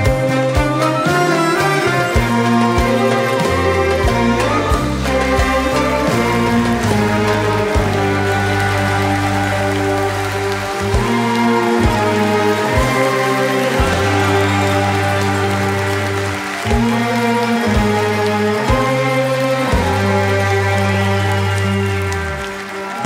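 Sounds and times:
long-held bass notes: 0:00.0 - 0:22.6
orchestral strings playing chords: 0:00.0 - 0:23.0.

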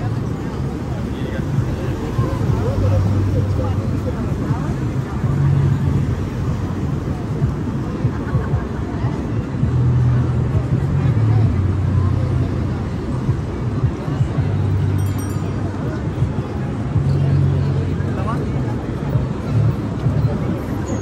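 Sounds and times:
crowd chatter: 0:00.0 - 0:21.0
traffic noise: 0:00.0 - 0:21.0
vehicles passing close by: 0:00.0 - 0:21.0.

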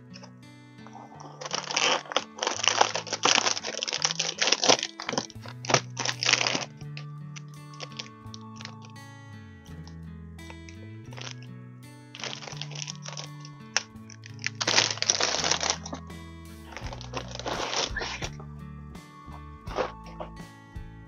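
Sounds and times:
background music with held notes: 0:00.0 - 0:21.0
cardboard box and packs handled: 0:00.9 - 0:06.7.

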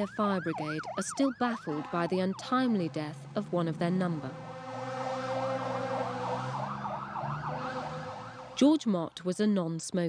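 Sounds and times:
fire engine siren yelping: 0:00.0 - 0:08.6.

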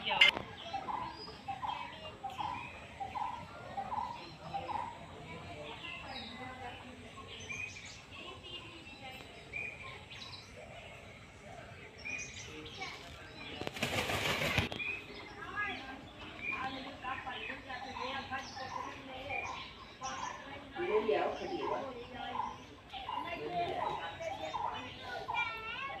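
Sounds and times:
children talking and calling out: 0:00.0 - 0:26.0
small birds chirping: 0:00.0 - 0:26.0
peacock wing flaps: 0:13.5 - 0:15.0.

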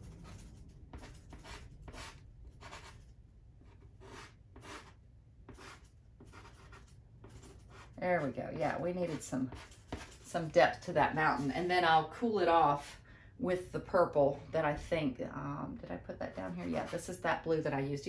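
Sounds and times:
pastel scratching on paper: 0:03.8 - 0:10.4.

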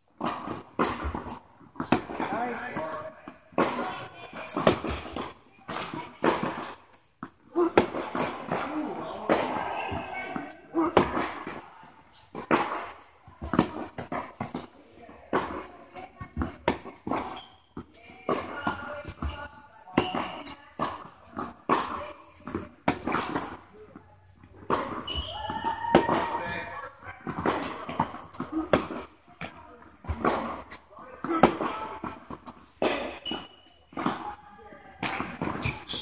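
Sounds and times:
tennis ball bouncing on court: 0:00.0 - 0:34.4, 0:35.0 - 0:36.0
tennis ball struck by racquets: 0:00.0 - 0:34.4, 0:35.0 - 0:36.0.

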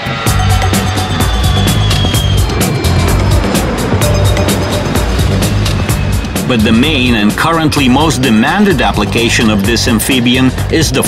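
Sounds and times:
jet aircraft flying past: 0:00.0 - 0:10.7
fast-beat background music: 0:00.0 - 0:11.0.

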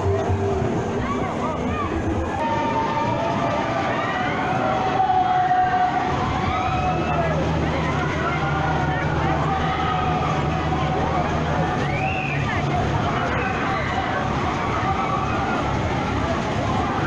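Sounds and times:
busy funfair background: 0:00.0 - 0:17.0
low steady drone: 0:00.0 - 0:17.0.

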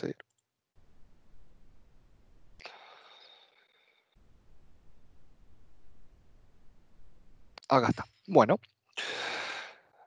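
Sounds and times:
faint clicks: 0:00.0 - 0:00.5
person speaking: 0:07.6 - 0:08.6.

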